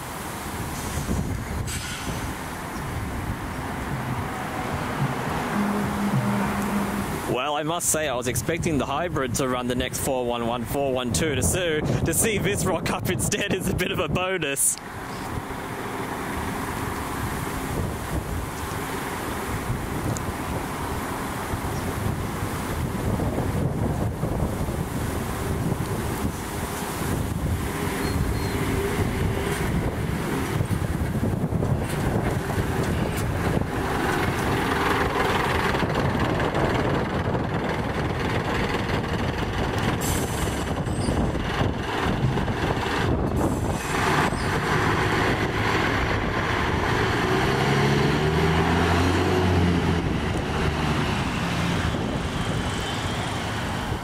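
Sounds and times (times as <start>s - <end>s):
buses engine drone: 0.0s - 54.0s
vehicle accelerating: 0.7s - 7.4s, 14.9s - 54.0s.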